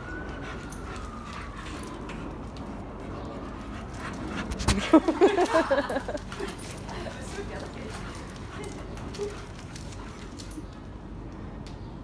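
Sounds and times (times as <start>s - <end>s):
distant siren wailing: 0.0s - 4.4s
low hum of outdoor noise: 0.0s - 12.0s.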